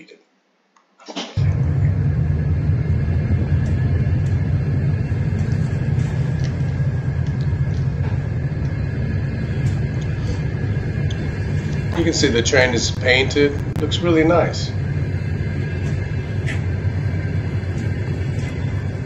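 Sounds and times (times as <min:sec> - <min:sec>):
train rumbling slowly: 0:01.4 - 0:19.0.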